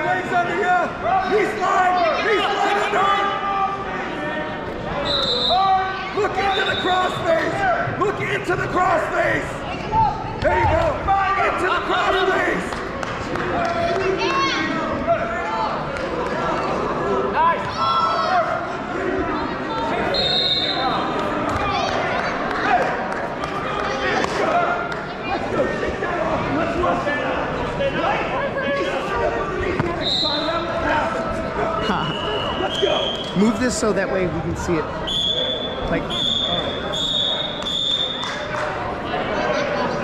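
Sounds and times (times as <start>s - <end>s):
scattered voices: 0.0s - 40.0s
referee's whistle blast: 5.0s - 5.6s, 35.0s - 38.2s.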